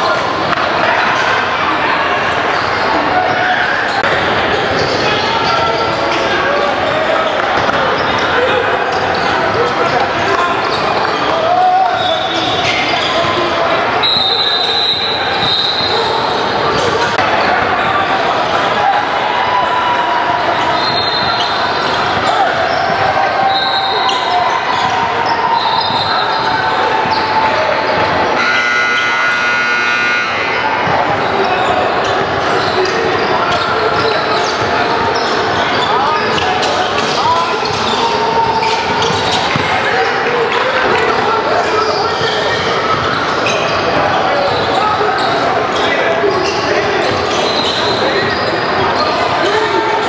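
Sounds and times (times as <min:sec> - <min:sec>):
voices echoing: 0:00.0 - 0:50.0
sneaker squeaks: 0:02.0 - 0:17.9, 0:20.5 - 0:50.0
buzzer: 0:28.4 - 0:30.7.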